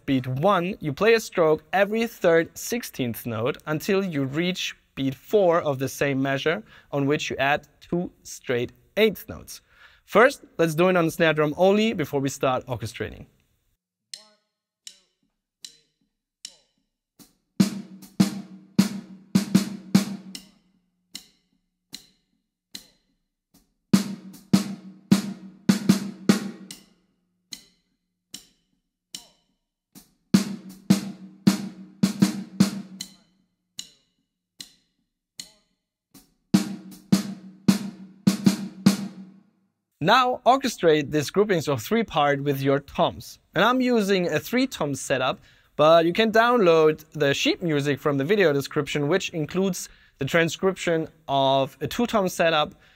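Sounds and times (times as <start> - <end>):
snare drum fill: 30.4 - 33.1.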